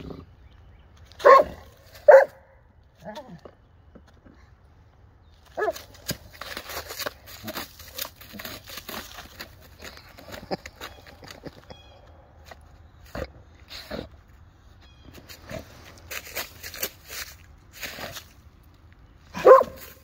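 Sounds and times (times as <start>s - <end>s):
leaves rustling: 5.4s - 11.2s, 15.1s - 20.0s.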